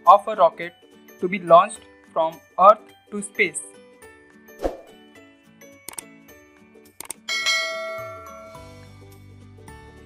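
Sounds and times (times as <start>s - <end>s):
soft background music: 0.0s - 10.0s
notification bell chime: 7.3s - 8.8s.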